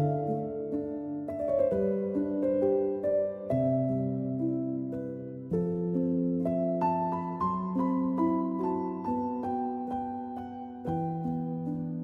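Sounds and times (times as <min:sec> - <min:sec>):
slow gentle solo piano: 0:00.0 - 0:12.0.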